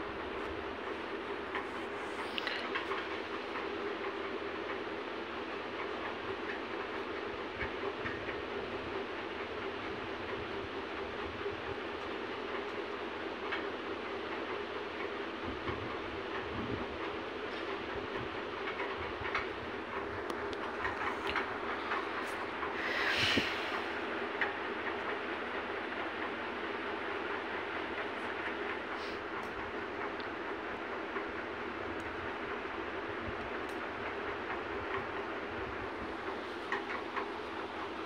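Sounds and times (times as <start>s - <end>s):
background hum and hiss: 0.0s - 38.0s.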